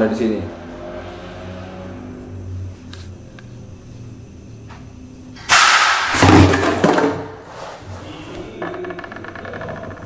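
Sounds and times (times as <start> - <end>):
loud noise: 5.4 - 7.1
loud thud: 5.5 - 7.3.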